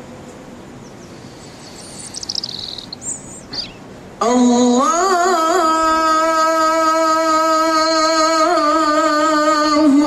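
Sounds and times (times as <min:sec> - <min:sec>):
faint outdoor hiss: 0:00.0 - 0:10.0
bird chirping: 0:00.8 - 0:03.9.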